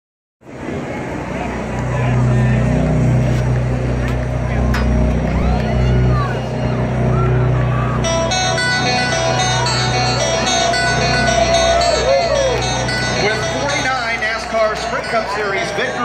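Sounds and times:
crowd chattering: 0:00.4 - 0:16.0
race car engines droning: 0:00.4 - 0:16.0.

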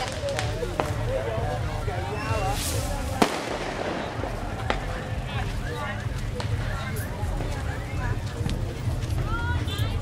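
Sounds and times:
firecracker bang: 0:00.0 - 0:01.1, 0:02.4 - 0:05.3
people talking: 0:00.0 - 0:10.0
street noise: 0:00.0 - 0:10.0.

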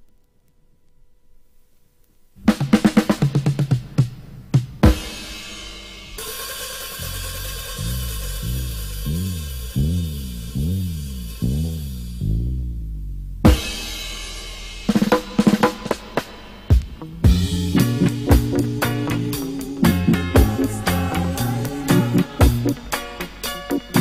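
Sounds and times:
sharp drum hits: 0:02.5 - 0:09.8, 0:13.5 - 0:24.0
reggae music: 0:02.5 - 0:12.2, 0:13.5 - 0:24.0
cymbal wash: 0:04.8 - 0:12.2, 0:13.5 - 0:24.0
low sliding tone: 0:05.9 - 0:15.5, 0:17.3 - 0:23.3.

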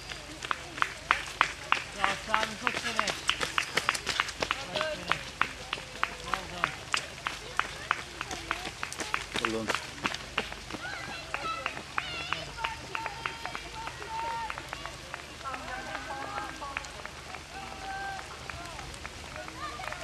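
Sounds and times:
background chatter: 0:00.0 - 0:20.0.

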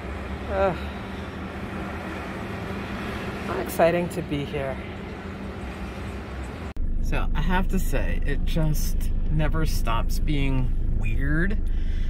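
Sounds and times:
car interior engine and road hum: 0:00.0 - 0:12.0
distant city traffic: 0:00.0 - 0:12.0.

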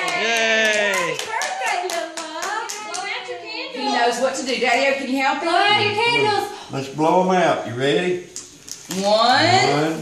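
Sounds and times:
hands clapping rhythmically: 0:00.0 - 0:03.2.

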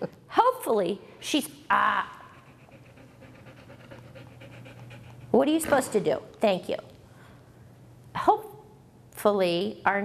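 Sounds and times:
dog panting: 0:02.3 - 0:05.6.

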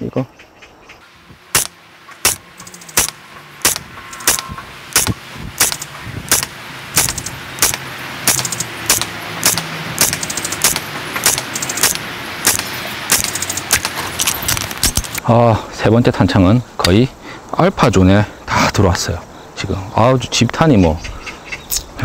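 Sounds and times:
airsoft rifle single shots: 0:01.6 - 0:14.0.

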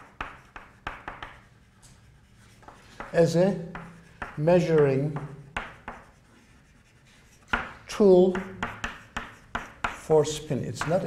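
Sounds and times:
chalk scratching on blackboard: 0:00.0 - 0:11.0.

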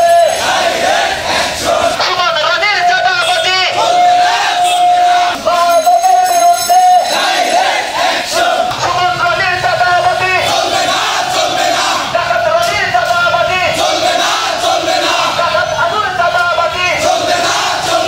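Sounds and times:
crowd of men chanting slogans: 0:00.0 - 0:02.2, 0:02.8 - 0:05.6, 0:06.9 - 0:18.0.

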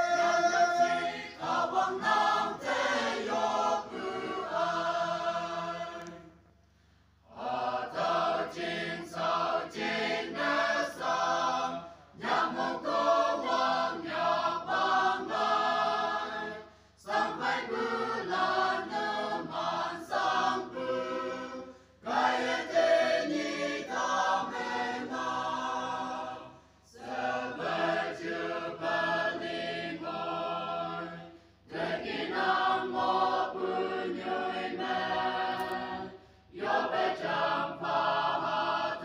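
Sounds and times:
choir singing: 0:00.0 - 0:06.5, 0:07.3 - 0:39.0.

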